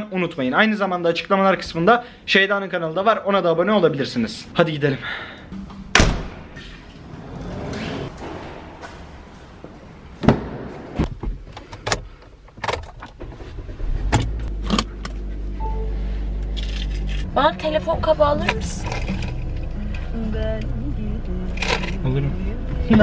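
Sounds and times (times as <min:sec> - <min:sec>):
car engine starting and idling: 0:05.5 - 0:23.0
car keys jangling: 0:16.5 - 0:17.3, 0:18.4 - 0:20.0, 0:21.6 - 0:22.1.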